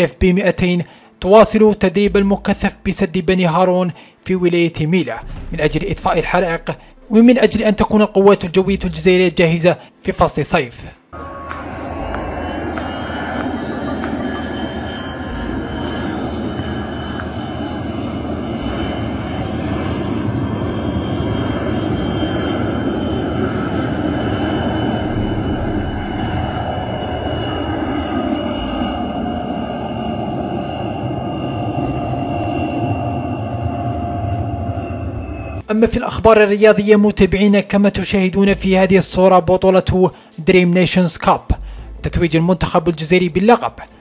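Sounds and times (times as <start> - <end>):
jet engines whining: 11.0 - 36.0
thin high tone: 11.2 - 35.6.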